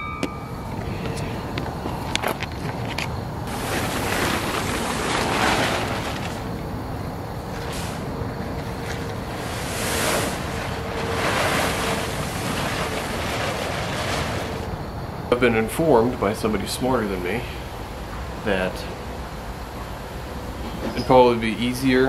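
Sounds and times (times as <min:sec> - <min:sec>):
plastic tarp rustling: 0:03.4 - 0:14.8.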